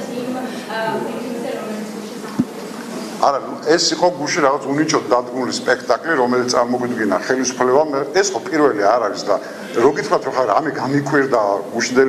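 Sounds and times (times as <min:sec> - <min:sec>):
man speaking into microphone: 0:03.2 - 0:12.0.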